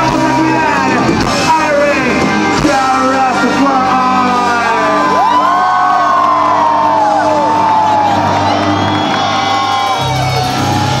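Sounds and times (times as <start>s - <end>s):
rock band holding a chord: 0.0s - 11.0s
crowd cheering and whooping: 4.6s - 11.0s.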